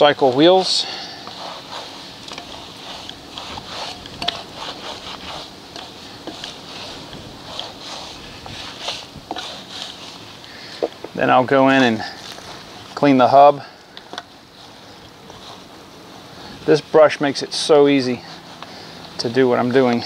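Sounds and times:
bristles clicking on spokes: 0:00.0 - 0:13.1
brush scrubbing wheel spokes: 0:00.0 - 0:20.0.

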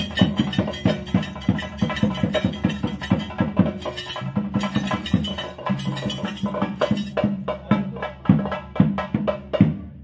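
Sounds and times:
drums beating fast rhythm: 0:00.0 - 0:10.0.

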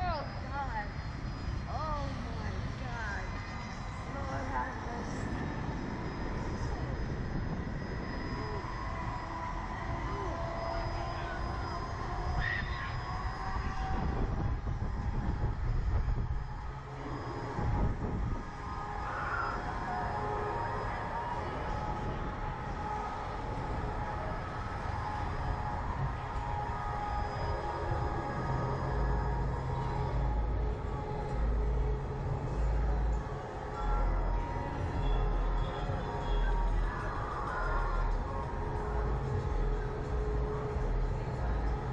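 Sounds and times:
faint steady tones: 0:00.0 - 0:41.9
wind buffeting microphone: 0:00.0 - 0:41.9.

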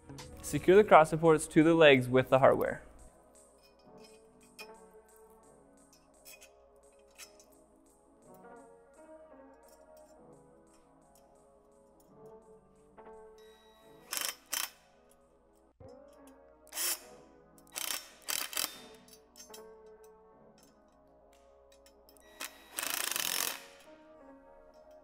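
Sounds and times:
background music: 0:00.0 - 0:25.0
power drill whirring: 0:16.8 - 0:17.0, 0:22.2 - 0:23.9.

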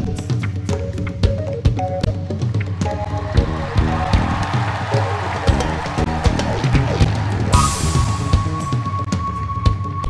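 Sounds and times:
drum kit steady beat: 0:00.0 - 0:08.9.

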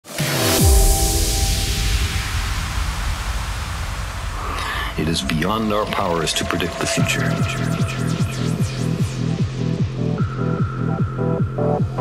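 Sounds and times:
rush of noise over deep rumble: 0:01.8 - 0:08.6.

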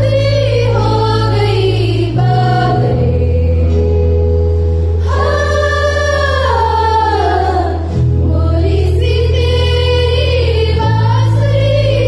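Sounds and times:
girls singing in unison: 0:00.0 - 0:03.9, 0:05.0 - 0:12.0.

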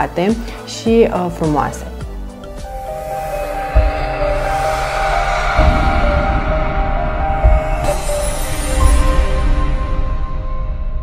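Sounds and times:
music with held tones: 0:00.0 - 0:10.5
deep low hit: 0:02.3 - 0:10.7.

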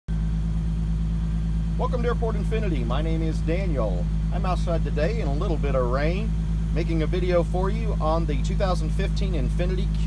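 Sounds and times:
car engine idling: 0:00.1 - 0:10.0.

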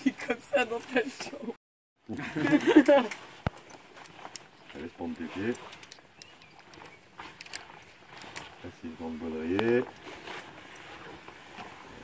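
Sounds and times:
rope gear clicks: 0:02.7 - 0:08.6.

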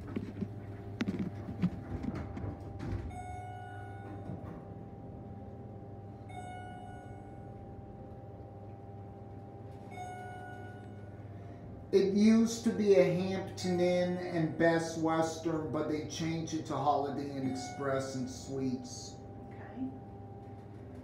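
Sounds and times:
elevator low hum: 0:00.0 - 0:21.0
elevator bell chime: 0:03.1 - 0:05.4, 0:06.0 - 0:21.0.

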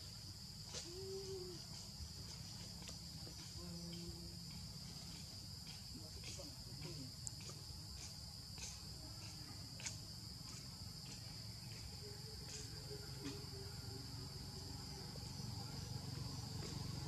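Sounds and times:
high-pitched insect drone: 0:00.0 - 0:17.0.

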